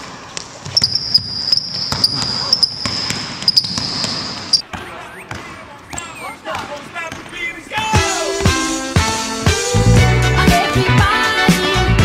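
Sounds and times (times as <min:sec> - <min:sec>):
basketball bouncing on wooden floor: 0:00.6 - 0:05.6
sneaker squeaks: 0:00.6 - 0:07.3.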